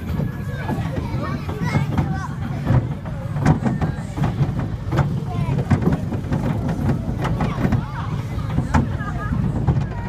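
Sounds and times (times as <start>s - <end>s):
rollercoaster train rumbling: 0.0s - 10.0s
wheels clacking over rails: 0.0s - 10.0s.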